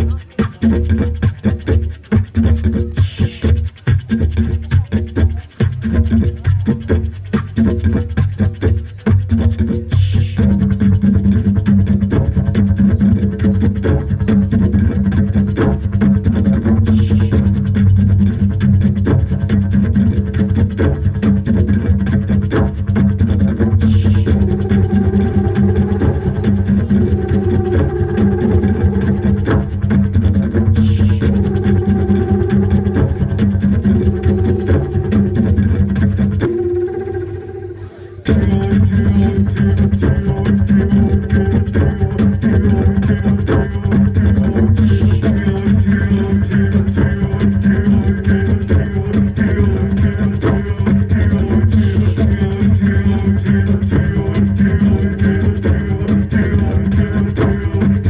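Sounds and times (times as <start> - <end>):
didgeridoo rhythmic drone: 0.0 - 58.0.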